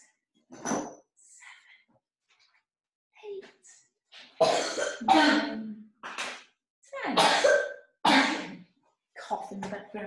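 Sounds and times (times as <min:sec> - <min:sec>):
person coughing: 0:04.4 - 0:05.6, 0:07.2 - 0:08.6.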